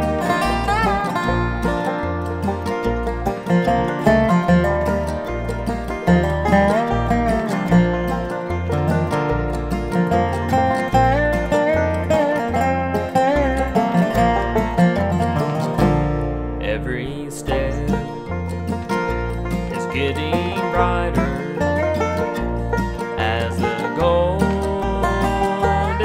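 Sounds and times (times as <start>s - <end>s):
plucked strings: 0.0s - 26.0s
steady bass line: 0.0s - 26.0s
wavering lead melody: 0.0s - 26.0s.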